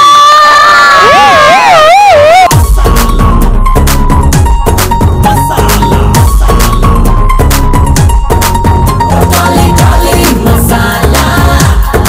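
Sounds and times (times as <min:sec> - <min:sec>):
crowd cheering and shouting: 0:00.0 - 0:02.6.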